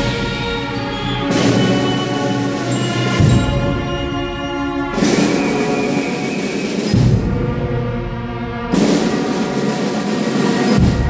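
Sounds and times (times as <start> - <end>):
wind band playing funeral march: 0.0 - 11.0.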